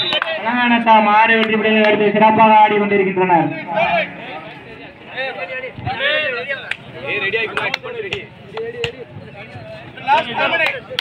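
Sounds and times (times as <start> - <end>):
sharp claps or slaps: 6.6 - 6.9, 7.5 - 9.0.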